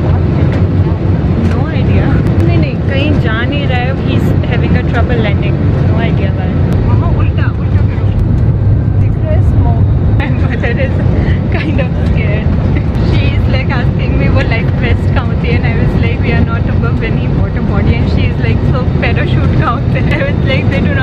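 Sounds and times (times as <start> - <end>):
airliner cabin rumble: 0.0 - 21.0
passengers talking: 0.0 - 21.0.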